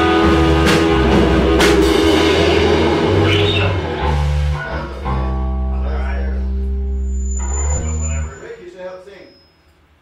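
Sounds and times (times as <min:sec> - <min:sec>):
electric guitar chords ringing: 0:00.0 - 0:08.6
thin high whine: 0:06.8 - 0:09.9.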